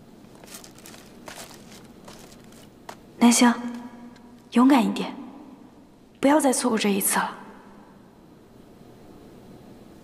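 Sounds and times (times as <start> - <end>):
soft footsteps walking away: 0.2 - 4.6.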